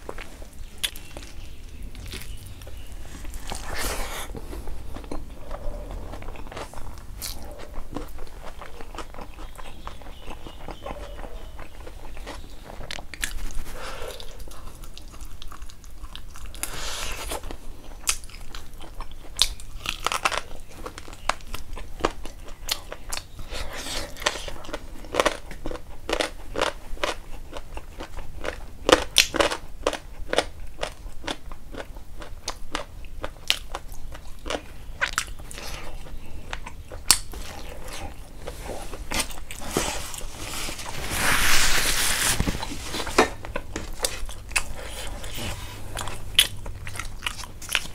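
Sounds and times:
chewing and biting: 0.0s - 40.9s, 43.4s - 47.9s.

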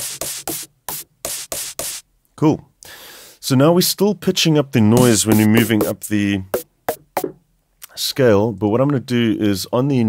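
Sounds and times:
hissy snare hits: 0.0s - 2.0s, 5.0s - 6.0s, 6.6s - 7.4s.

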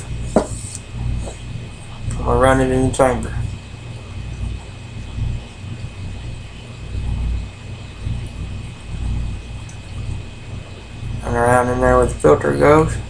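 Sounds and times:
low uneven rumble: 0.0s - 13.0s
steady hiss: 0.0s - 13.0s.

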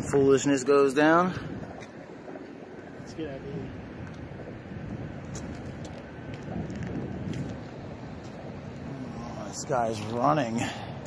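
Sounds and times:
outdoor street noise: 0.0s - 11.0s.

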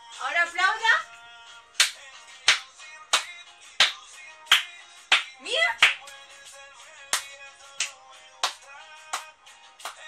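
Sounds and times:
song playing quietly: 0.0s - 10.0s
hand claps: 1.8s - 10.0s.

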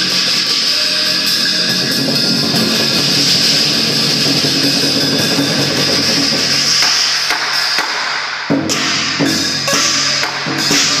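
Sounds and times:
clashing cymbals: 0.0s - 11.0s
drum beaten loudly: 0.0s - 11.0s.

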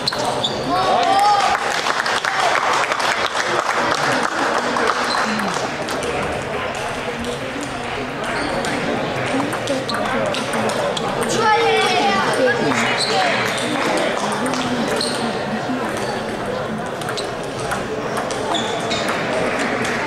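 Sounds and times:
many voices: 0.0s - 20.0s
table tennis balls clicking: 8.6s - 11.4s, 16.9s - 20.0s.

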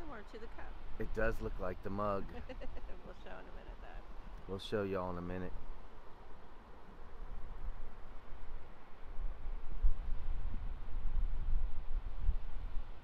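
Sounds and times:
wind buffeting microphone: 5.5s - 13.0s.

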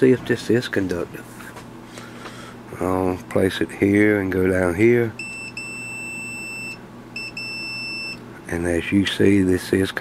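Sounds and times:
multimeter continuity beep: 5.2s - 8.2s.

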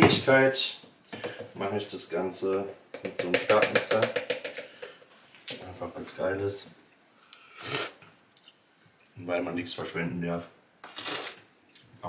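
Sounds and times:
sharp breath through nose: 7.2s - 8.0s.

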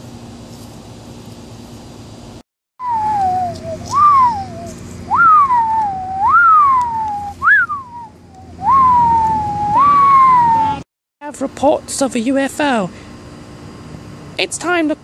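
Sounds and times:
eerie whistled ufo tone: 2.8s - 10.8s.

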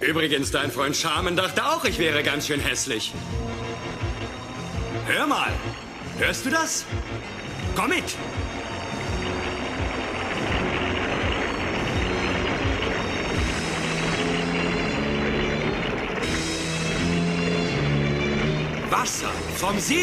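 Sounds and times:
background music low notes: 0.0s - 20.0s
cartoon water pouring roar: 9.2s - 16.8s.

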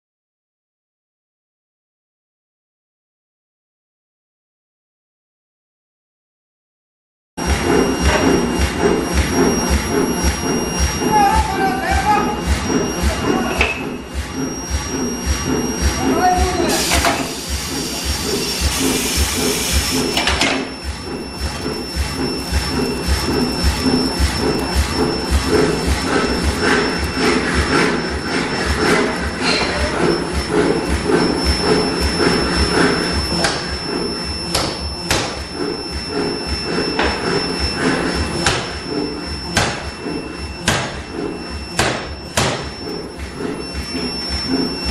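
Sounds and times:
forging hammer rhythmic pounding: 7.4s - 44.9s
induction heater high whine: 7.4s - 44.9s
sharp hammer strikes: 34.5s - 35.5s, 38.4s - 38.8s, 39.5s - 40.0s, 40.6s - 41.0s, 41.7s - 42.8s.

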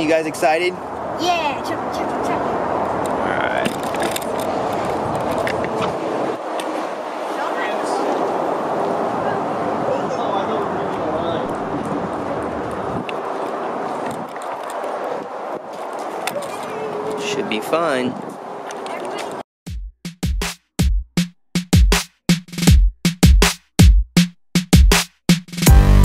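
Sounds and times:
outdoor background noise: 0.0s - 19.4s.

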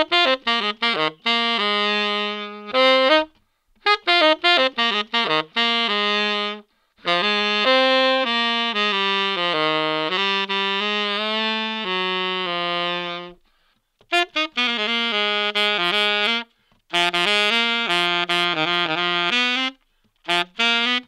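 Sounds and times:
tenor saxophone playing: 0.0s - 21.0s.

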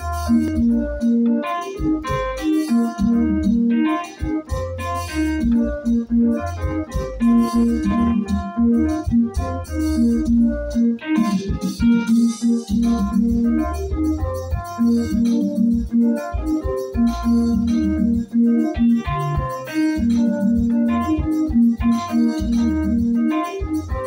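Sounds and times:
bass line: 0.0s - 24.0s
drum rhythm: 0.0s - 24.0s
keyboard melody: 0.0s - 24.0s.

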